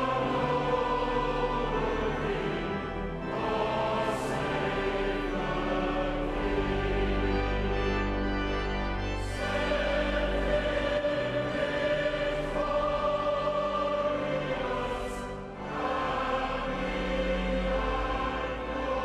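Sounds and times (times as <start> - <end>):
choir singing held chords: 0.0 - 19.0.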